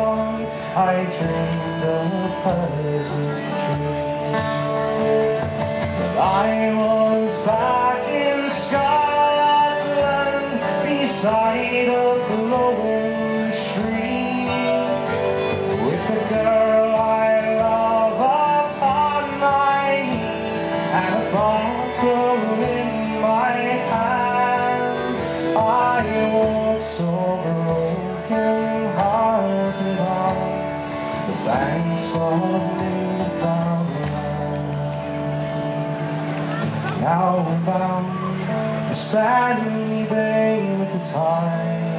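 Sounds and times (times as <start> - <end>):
man singing: 0.0 - 35.7, 36.5 - 41.9
folk band playing: 0.0 - 41.9
strummed acoustic guitar: 0.0 - 41.9.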